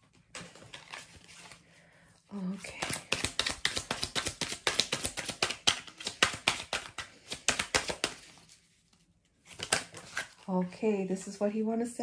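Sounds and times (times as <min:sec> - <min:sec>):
cards being shuffled: 0:02.5 - 0:10.5.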